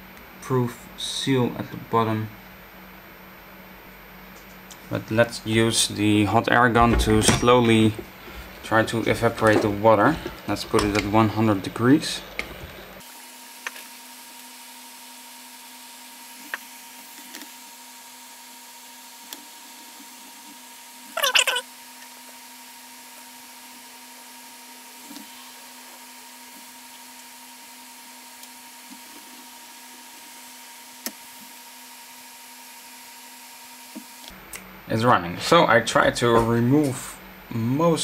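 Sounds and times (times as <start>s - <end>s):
short high squeak: 21.2s - 21.6s.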